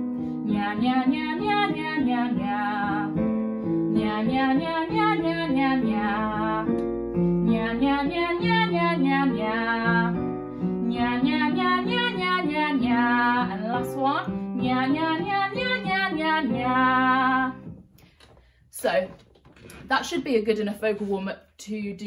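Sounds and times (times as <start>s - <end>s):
digital piano chords: 0.0s - 18.0s
woman singing vocal warm-up: 0.4s - 3.2s, 3.9s - 6.8s, 7.4s - 17.8s.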